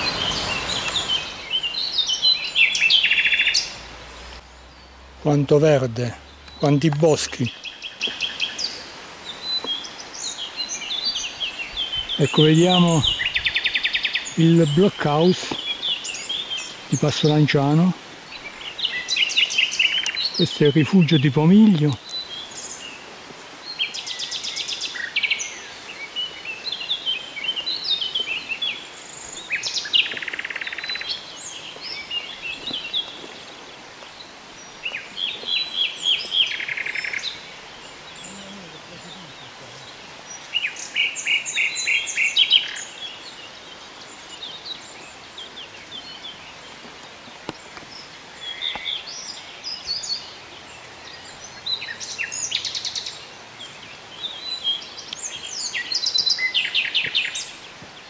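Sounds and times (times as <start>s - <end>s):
faint background hiss: 0.0s - 58.0s
songbirds trilling and chirping: 0.0s - 58.0s.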